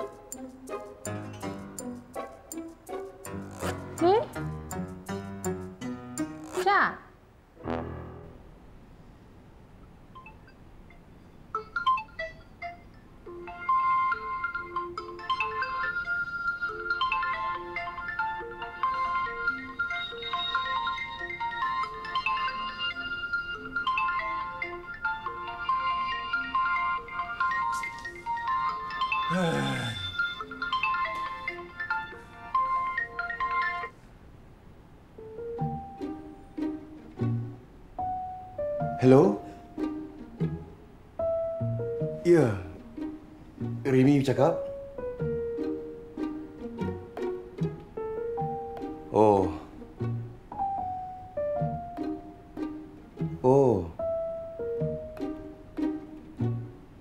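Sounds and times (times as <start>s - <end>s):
marimba phone ringtone: 13.5s - 27.8s, 28.4s - 33.9s.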